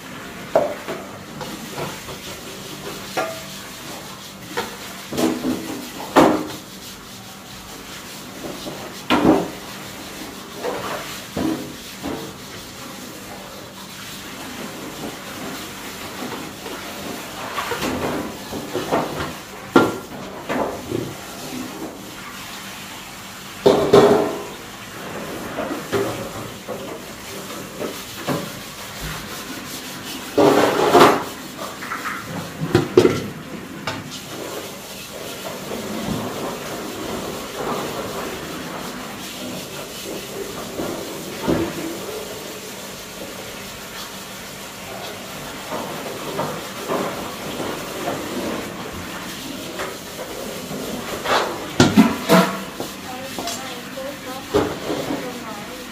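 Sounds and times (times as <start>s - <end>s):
scrubbing metal wok: 0.0s - 55.9s.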